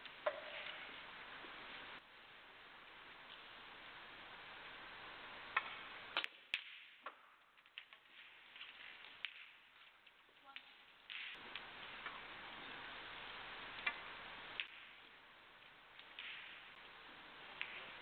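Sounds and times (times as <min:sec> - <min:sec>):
faint steady hiss: 0:00.0 - 0:18.0
snooker balls clicking: 0:17.5 - 0:18.0.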